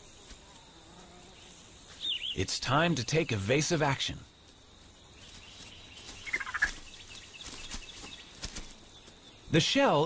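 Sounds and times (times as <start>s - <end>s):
faint scattered crackles: 4.2s - 9.6s.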